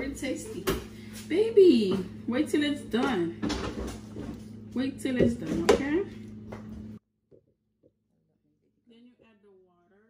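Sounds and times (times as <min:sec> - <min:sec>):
low background hum: 0:00.0 - 0:07.0.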